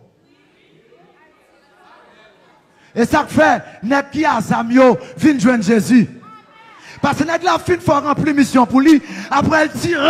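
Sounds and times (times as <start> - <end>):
murmur of background voices: 0.0 - 4.0.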